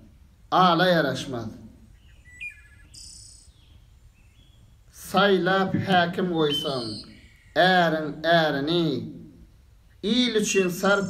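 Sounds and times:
bird chirp: 0:01.8 - 0:08.8.

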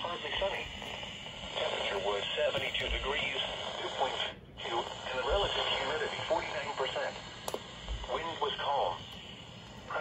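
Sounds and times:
automated voice on radio speaker: 0:00.0 - 0:00.9, 0:01.5 - 0:07.2, 0:08.0 - 0:09.2.

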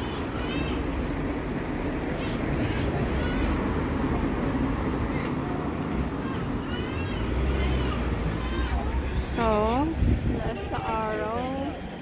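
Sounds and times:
low rumble of street noise: 0:00.0 - 0:12.0.

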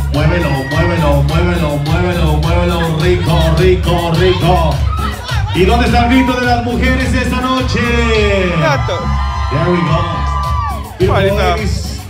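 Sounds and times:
dance music with bass beat: 0:00.0 - 0:12.0
woman whooping: 0:04.3 - 0:05.6.

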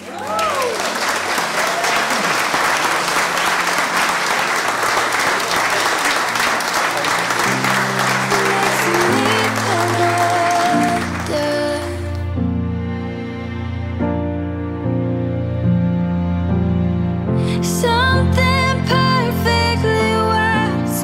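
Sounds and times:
congregation applauding and cheering: 0:00.0 - 0:12.1
soft instrumental music: 0:07.4 - 0:21.0.

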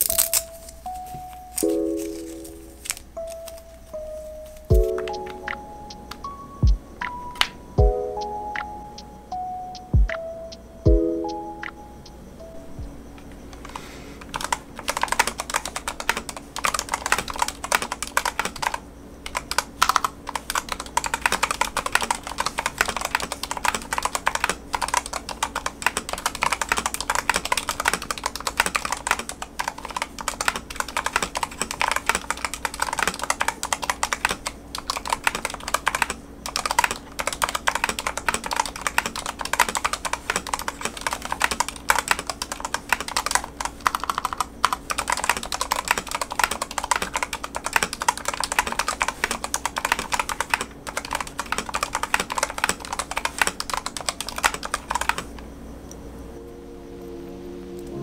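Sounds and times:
faint steady hum: 0:00.0 - 0:58.0
mechanical keyboard typing: 0:13.2 - 0:55.4.

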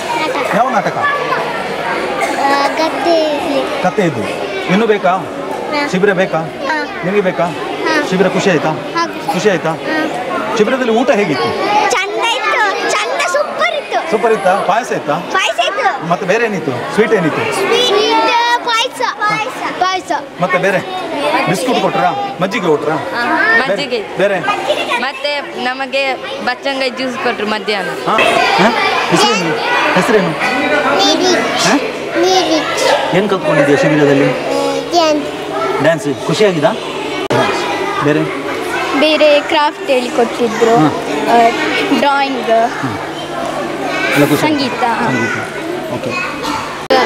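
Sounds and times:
children talking into microphone: 0:00.0 - 0:47.0.

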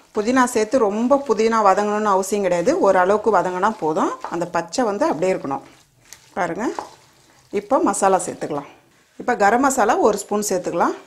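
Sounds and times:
faint sizzle of frying: 0:00.0 - 0:11.0
wooden spoon stirring pot: 0:00.0 - 0:11.0
person speaking: 0:00.1 - 0:11.0.

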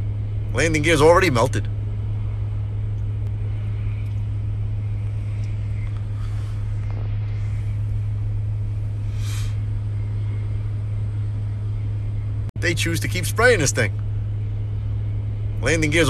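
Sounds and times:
vehicle cabin rumble: 0:00.0 - 0:16.0
hiss: 0:09.0 - 0:09.6.

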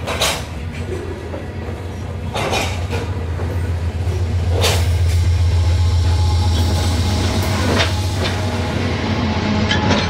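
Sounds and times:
diesel locomotive drone: 0:00.0 - 0:10.0
freight train rolling over bridge: 0:00.0 - 0:10.0.

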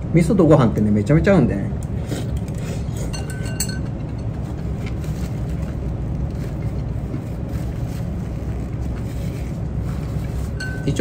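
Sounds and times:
low room rumble: 0:00.0 - 0:11.0
spoon and chopsticks clinking bowl: 0:03.0 - 0:04.4, 0:10.6 - 0:11.0.

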